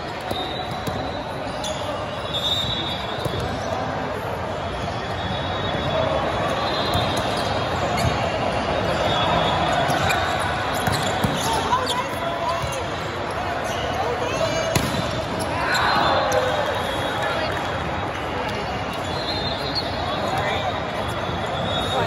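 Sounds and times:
shoe squeaks on court: 0.0s - 3.8s, 6.5s - 13.0s
babble of voices: 1.2s - 22.0s
volleyball being smacked: 14.7s - 15.1s.

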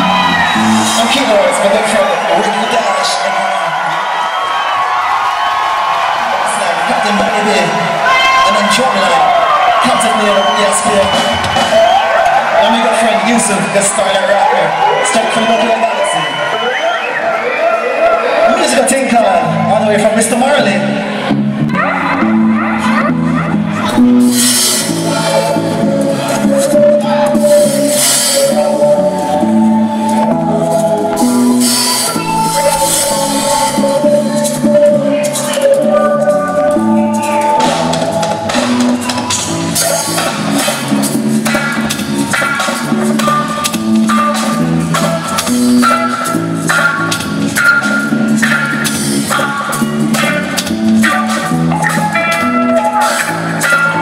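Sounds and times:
live reggae band playing: 0.0s - 54.0s.

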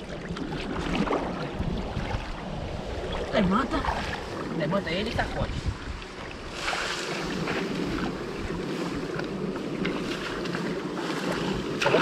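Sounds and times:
wind buffeting microphone: 0.0s - 12.0s
net dragged through water: 6.4s - 12.0s
small splashes: 9.8s - 12.0s
loud splash: 11.1s - 12.0s.

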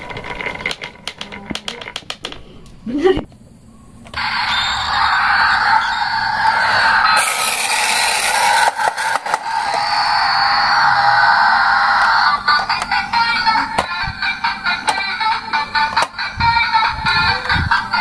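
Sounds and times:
toy truck sound effect: 4.1s - 18.0s.

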